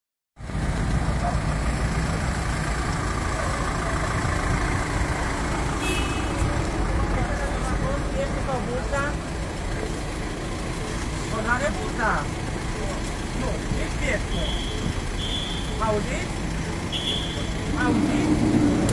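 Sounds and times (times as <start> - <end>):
engine idling: 0.4 - 18.9
street traffic: 0.4 - 18.9
people talking: 10.9 - 15.0, 15.6 - 16.4, 17.5 - 18.9.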